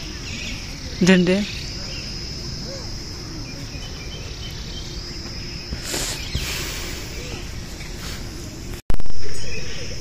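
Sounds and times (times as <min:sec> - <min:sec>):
insects buzzing: 0:00.0 - 0:10.0.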